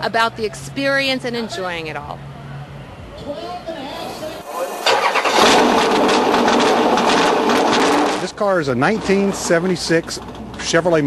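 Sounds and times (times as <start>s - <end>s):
race car engine starting and running: 4.2s - 11.0s.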